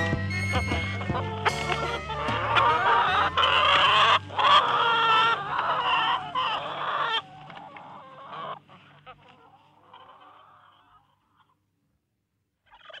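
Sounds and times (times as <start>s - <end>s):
chicken-like clucking: 0.4s - 11.6s.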